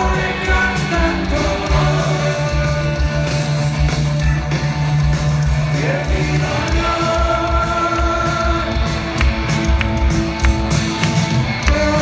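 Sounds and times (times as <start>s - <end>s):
electric guitars: 0.0s - 12.0s.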